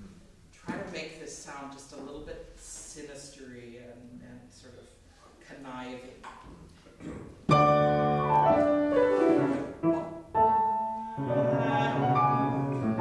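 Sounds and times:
grand piano playing: 7.5 - 13.0
loud piano chord: 7.5 - 13.0.

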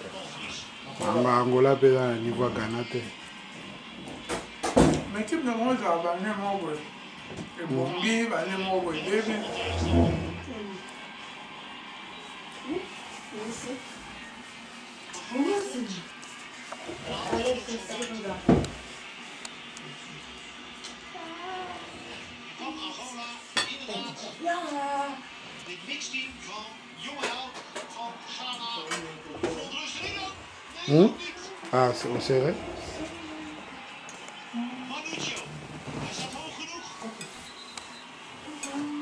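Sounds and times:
people talking in a room: 0.0 - 39.0.

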